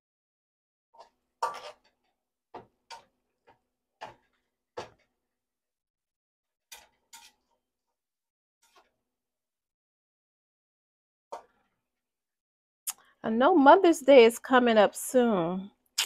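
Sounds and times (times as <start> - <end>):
spatulas scraping a wok: 1.0 - 2.2, 6.6 - 7.7, 8.6 - 9.0.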